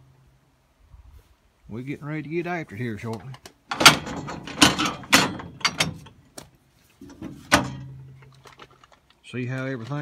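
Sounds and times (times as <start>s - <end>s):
metal gate clanking: 3.7s - 6.2s, 7.0s - 8.3s.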